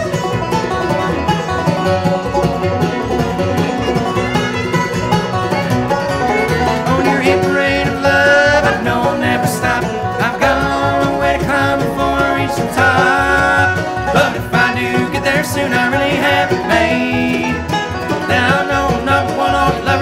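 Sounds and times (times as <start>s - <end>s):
banjo picking: 0.0s - 20.0s
bluegrass band playing: 0.0s - 20.0s.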